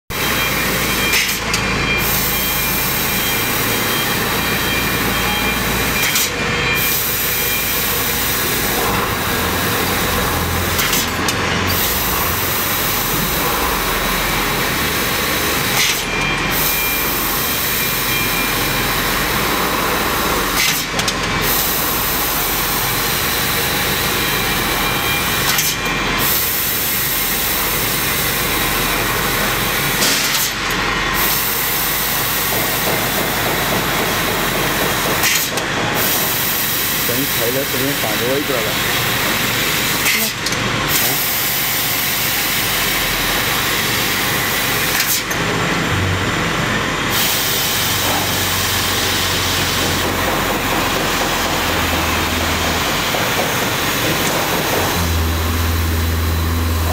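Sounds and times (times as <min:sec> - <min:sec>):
laser cutter hissing: 0:02.0 - 0:45.6, 0:47.0 - 0:56.9.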